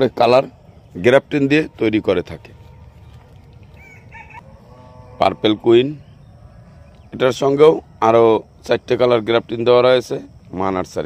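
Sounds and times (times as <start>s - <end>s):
rooster crowing: 3.2s - 7.0s.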